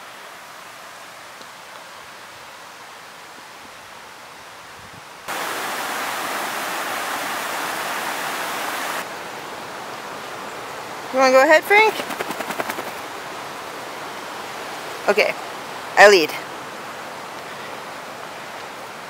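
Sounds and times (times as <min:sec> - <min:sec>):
creek rushing over boulders: 0:00.0 - 0:19.0
faint outdoor hiss: 0:00.0 - 0:19.0.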